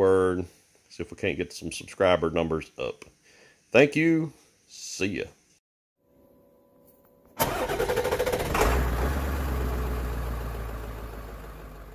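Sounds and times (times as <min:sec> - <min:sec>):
engine starter cranking: 0:07.4 - 0:09.9
engine idling: 0:07.4 - 0:11.9.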